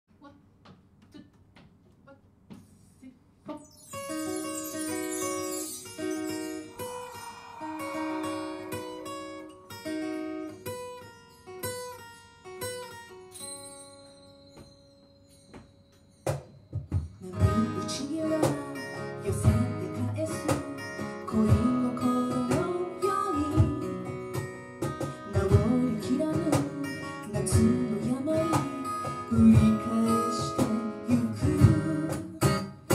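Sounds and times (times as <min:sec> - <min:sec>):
acoustic guitar picking: 0:03.6 - 0:32.9
acoustic guitar strumming: 0:03.6 - 0:32.9.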